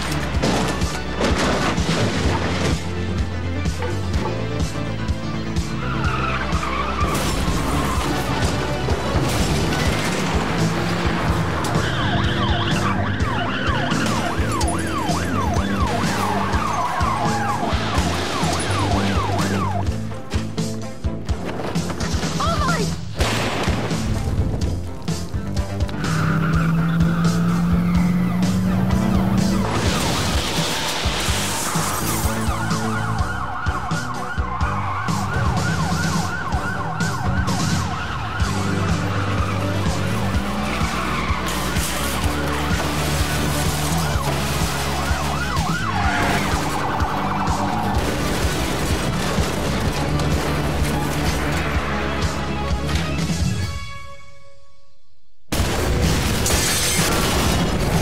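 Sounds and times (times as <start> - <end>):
background music: 0.0 - 58.0
police siren wailing: 11.3 - 20.1, 26.0 - 52.6
background music with beat: 31.2 - 54.0.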